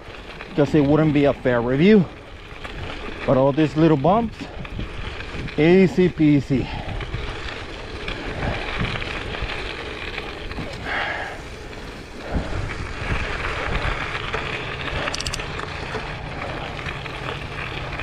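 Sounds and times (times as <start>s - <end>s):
bike tyres rolling on gravel: 0.0s - 18.0s
wind on microphone: 8.2s - 9.8s, 12.2s - 14.2s.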